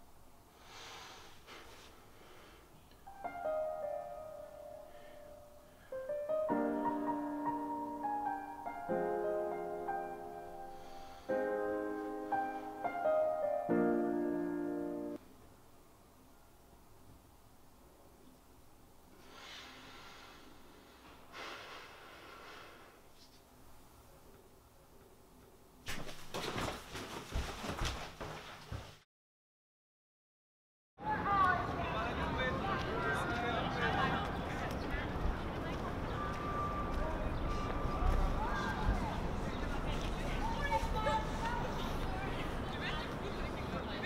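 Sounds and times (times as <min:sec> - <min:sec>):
sharp breath drawn in: 0:00.5 - 0:02.7, 0:10.6 - 0:11.5, 0:19.2 - 0:23.1
man breathing heavily: 0:00.5 - 0:02.8, 0:10.6 - 0:11.5, 0:19.1 - 0:23.1
indistinct voices of passers-by: 0:31.0 - 0:44.0.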